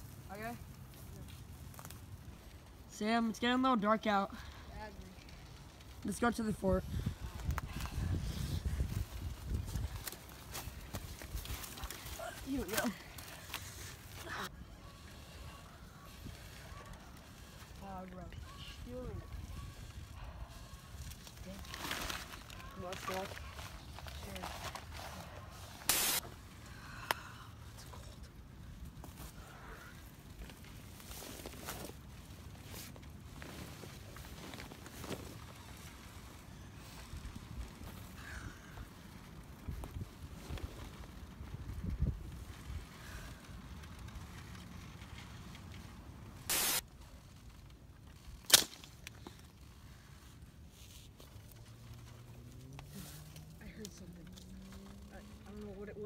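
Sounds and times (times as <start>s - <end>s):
short sharp noises: 25.8s - 26.2s, 46.5s - 46.8s
sharp crack: 25.8s - 26.3s, 48.3s - 49.1s.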